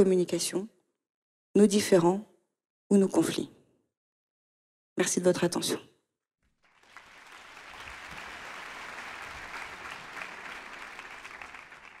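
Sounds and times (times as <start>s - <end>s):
audience applauding: 6.5s - 12.0s.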